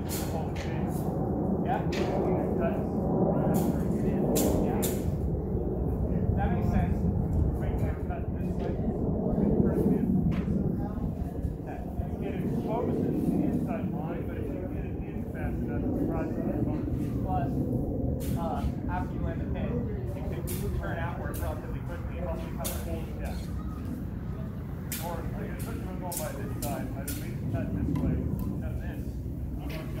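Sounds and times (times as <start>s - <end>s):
wind buffeting microphone: 0.0s - 30.0s.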